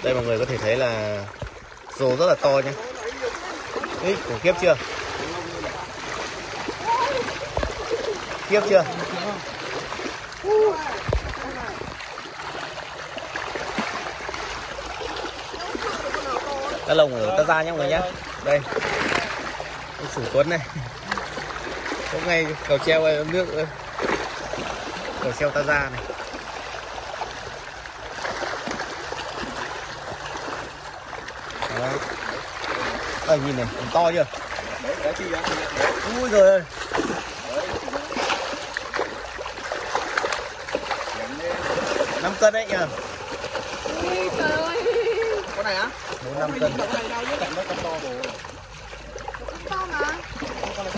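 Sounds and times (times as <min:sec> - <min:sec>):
fish splashing water: 0:00.0 - 0:50.9.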